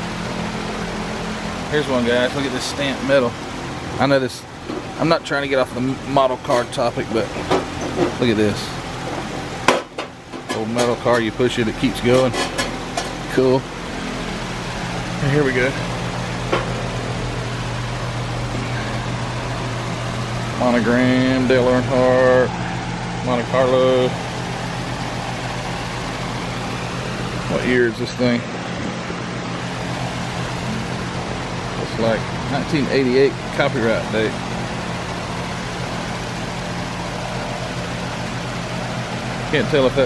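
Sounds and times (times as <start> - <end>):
low even hum: 0.0 - 40.0.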